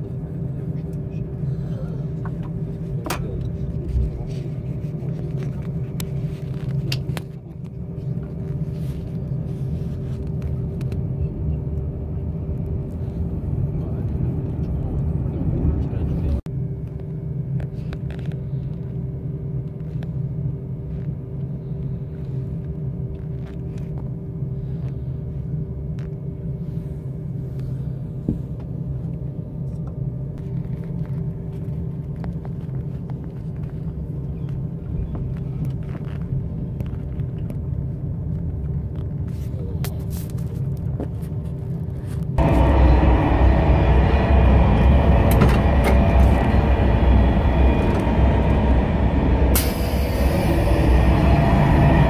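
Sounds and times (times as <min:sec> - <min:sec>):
train running gear rumble: 0:00.0 - 0:19.0, 0:25.9 - 0:52.0
held hum: 0:00.0 - 0:52.0.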